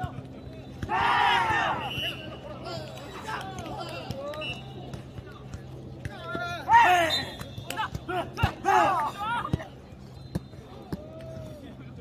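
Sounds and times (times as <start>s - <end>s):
players shouting calls: 0.0s - 12.0s.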